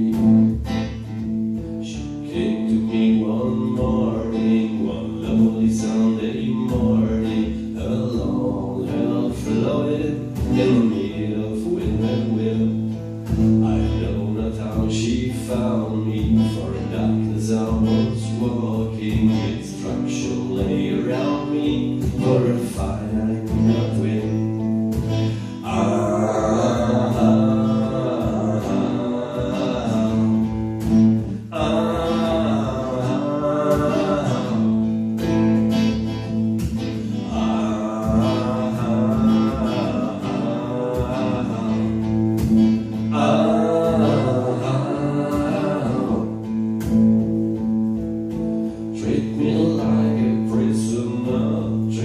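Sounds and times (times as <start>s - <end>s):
acoustic guitar strummed chords: 0.0s - 52.0s.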